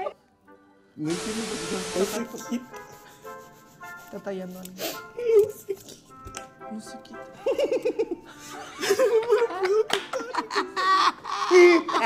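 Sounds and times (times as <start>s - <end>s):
people laughing: 2.2s - 4.3s, 7.4s - 12.0s.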